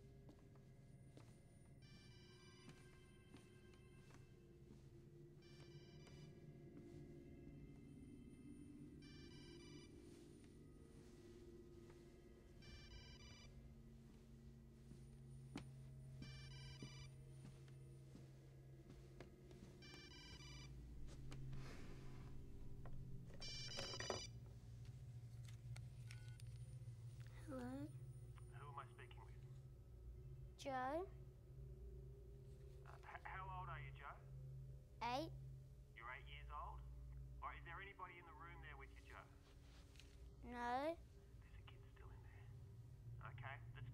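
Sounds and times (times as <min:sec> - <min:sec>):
low steady hum: 0:00.0 - 0:43.9
telephone ringing faintly: 0:01.7 - 0:15.0, 0:16.1 - 0:24.4
electronic telephone ringer trilling: 0:23.3 - 0:24.3.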